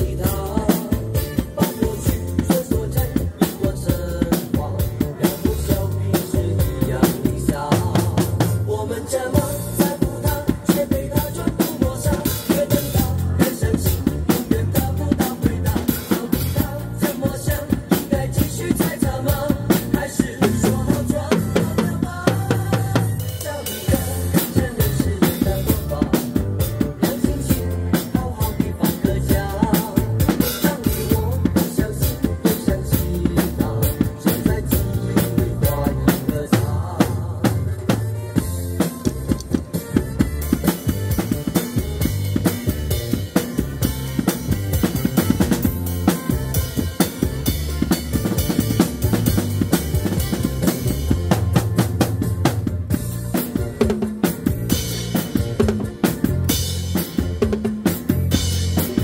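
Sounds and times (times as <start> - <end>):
drum kit groove: 0.0 - 59.0.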